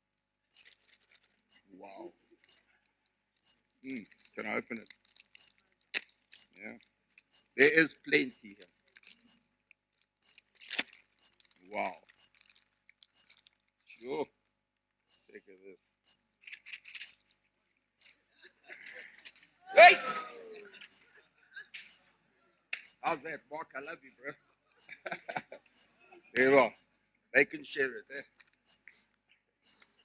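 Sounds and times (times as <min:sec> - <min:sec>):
gift wrapping rustling: 0:00.6 - 0:01.9, 0:03.7 - 0:07.3, 0:08.3 - 0:14.1.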